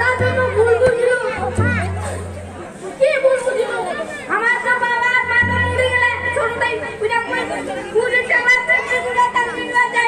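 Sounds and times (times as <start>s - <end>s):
boy speaking through pa: 0.0s - 10.0s
crowd chatter: 0.0s - 10.0s.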